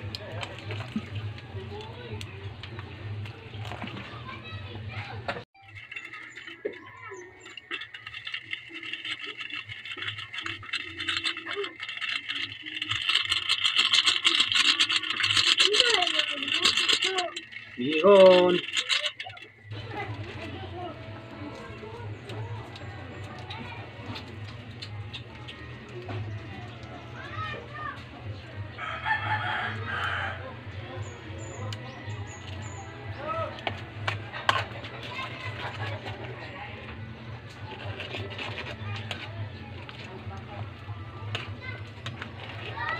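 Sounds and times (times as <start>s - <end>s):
broth boiling with crackling bubbles: 0.0s - 42.9s
rooster crowing: 28.8s - 30.6s.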